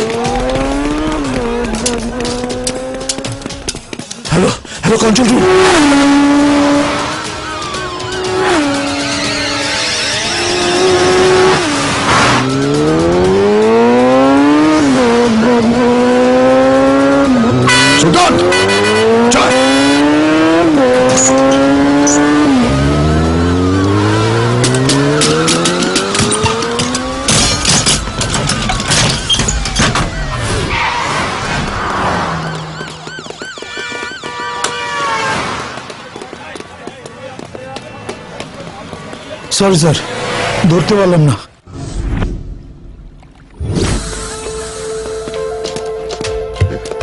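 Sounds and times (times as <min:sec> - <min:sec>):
motorcycle engine accelerating: 0:00.0 - 0:03.8, 0:05.2 - 0:17.7, 0:18.3 - 0:27.3
music: 0:06.8 - 0:15.6, 0:43.9 - 0:47.0
tyre squeal: 0:07.9 - 0:11.0.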